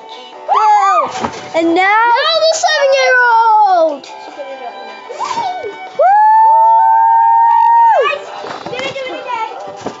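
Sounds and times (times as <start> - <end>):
excited shouting and chatter: 0.4 - 4.0, 5.0 - 9.7
children yelling woo: 0.5 - 1.2, 5.2 - 8.2.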